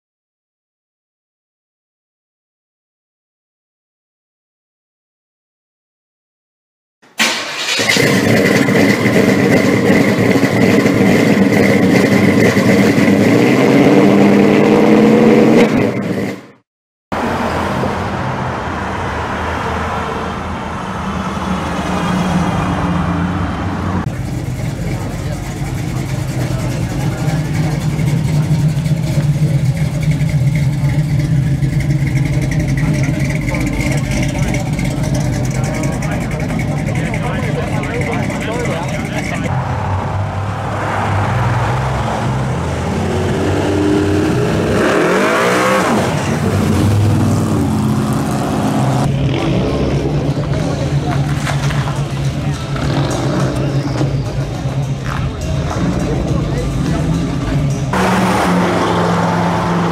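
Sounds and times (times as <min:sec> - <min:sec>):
car engines rumbling loudly: 0:07.2 - 0:59.9.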